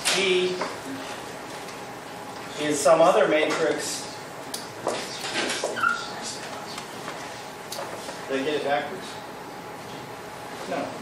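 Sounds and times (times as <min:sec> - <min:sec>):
high marker squeak: 0:05.8 - 0:06.2.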